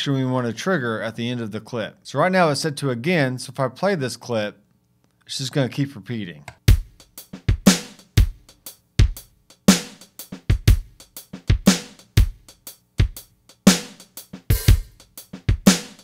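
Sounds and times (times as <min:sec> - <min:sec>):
synth shuffle drum groove: 0:06.6 - 0:16.0.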